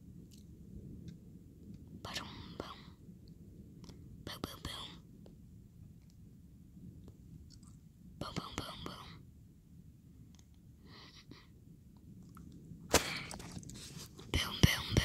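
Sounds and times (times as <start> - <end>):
low background noise: 0.0 - 15.0
person whispering: 2.0 - 2.9, 4.3 - 5.0, 8.2 - 9.2, 10.9 - 11.5, 13.1 - 15.0.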